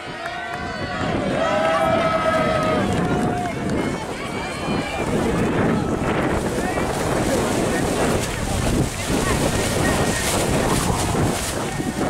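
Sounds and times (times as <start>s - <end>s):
spectators shouting encouragement: 0.0s - 6.9s
wind buffeting microphone: 0.0s - 12.0s.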